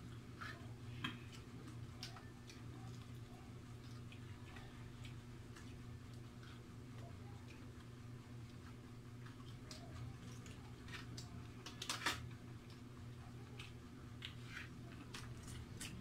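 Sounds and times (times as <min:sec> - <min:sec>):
steady low hum: 0:00.0 - 0:16.0
chewing clicks and smacks: 0:01.3 - 0:16.0.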